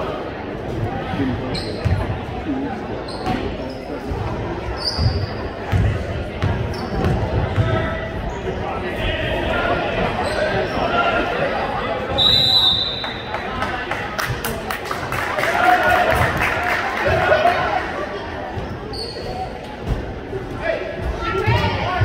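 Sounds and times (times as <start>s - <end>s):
voices echoing: 0.0s - 22.0s
sneaker squeaks: 1.5s - 2.1s, 3.0s - 5.8s, 6.4s - 8.6s, 18.5s - 20.0s
referee's whistle: 12.1s - 13.3s.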